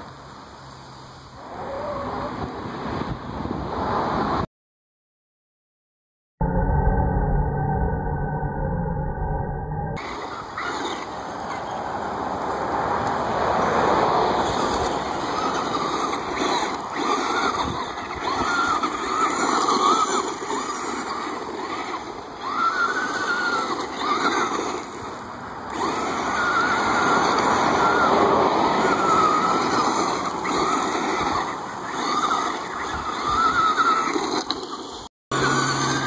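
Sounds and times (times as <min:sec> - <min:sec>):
tyres crunching on gravel: 0:12.4 - 0:36.0
electric motor whining: 0:14.5 - 0:36.0.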